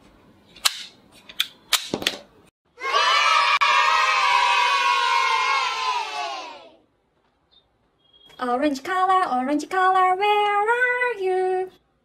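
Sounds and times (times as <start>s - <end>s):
children cheering: 2.8s - 6.8s.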